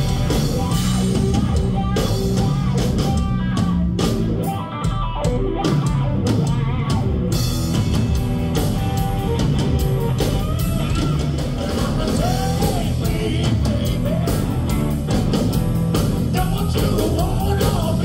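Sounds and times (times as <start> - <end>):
bass guitar: 0.0 - 18.0
drum kit: 0.0 - 18.0
electric guitar: 0.0 - 18.0.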